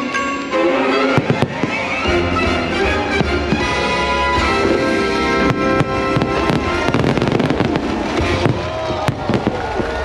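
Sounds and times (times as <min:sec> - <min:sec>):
orchestral music with strings: 0:00.0 - 0:10.0
fireworks banging: 0:01.0 - 0:10.0.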